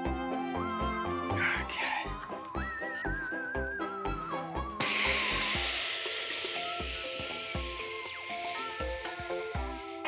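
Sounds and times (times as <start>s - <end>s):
upbeat background music: 0.0s - 10.0s
hissing whoosh sound effect: 4.8s - 10.0s.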